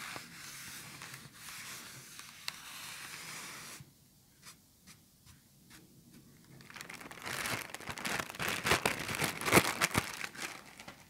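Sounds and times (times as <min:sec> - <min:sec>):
plastic bag crinkling: 0:06.4 - 0:11.0.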